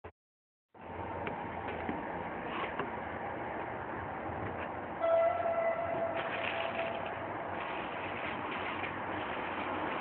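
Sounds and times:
outdoor background noise: 0.7 - 10.0
held horn tone: 5.0 - 7.5.

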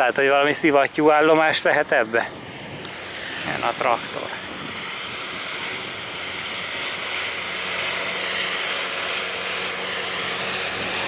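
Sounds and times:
tractor mower engine drone: 0.0 - 11.0.

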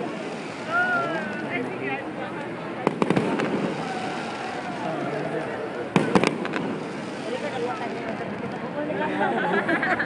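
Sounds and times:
fireworks bangs: 0.0 - 8.8
crowd chatter: 0.0 - 10.0.

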